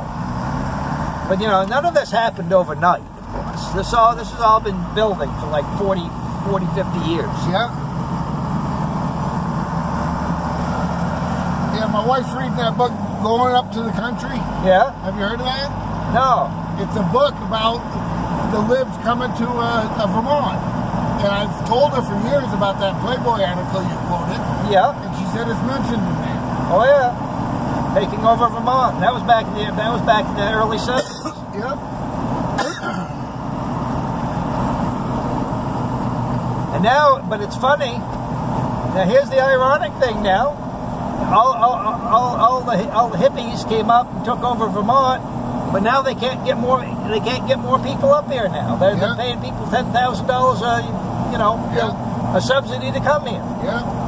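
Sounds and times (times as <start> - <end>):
truck engine and road drone: 0.0 - 54.0
person coughing: 31.0 - 31.4, 32.6 - 33.2.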